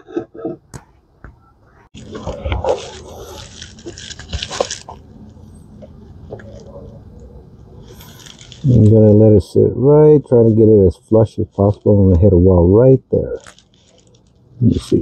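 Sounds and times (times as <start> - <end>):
rustling handling noise: 1.9 - 9.6, 10.2 - 15.0.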